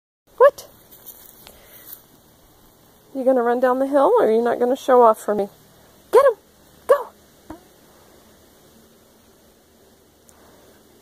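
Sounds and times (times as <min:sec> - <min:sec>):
faint rustling: 0:00.8 - 0:03.1.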